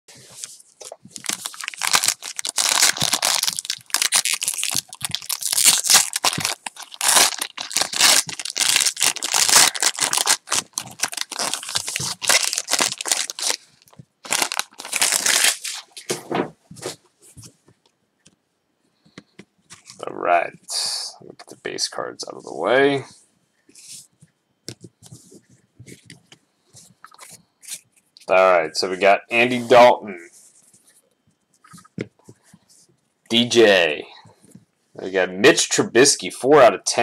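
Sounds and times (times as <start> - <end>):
wrapper tearing and crinkling: 1.1 - 16.1.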